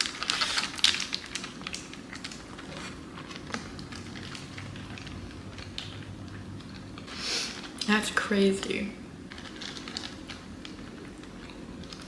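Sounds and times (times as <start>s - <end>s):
chewing and crunching food: 0.0s - 7.9s, 8.5s - 12.0s.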